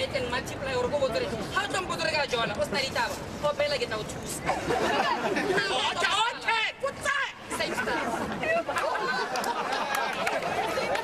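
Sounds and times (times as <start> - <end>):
crowd chatter: 0.0 - 11.0
people talking: 0.0 - 11.0.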